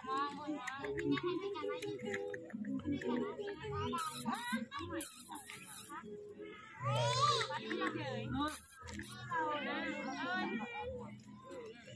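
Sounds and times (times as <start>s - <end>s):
people talking: 0.0s - 11.9s.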